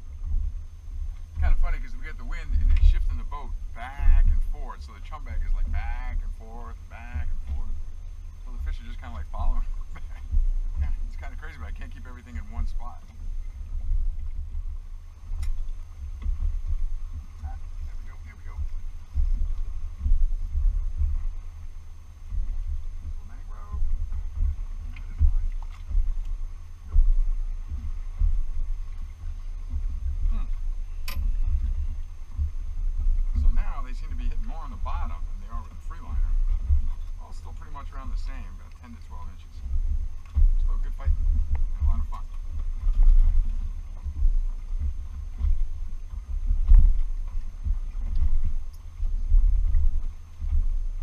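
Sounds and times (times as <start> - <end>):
wind buffeting microphone: 0.0 - 51.0
faint clicks: 45.3 - 49.1.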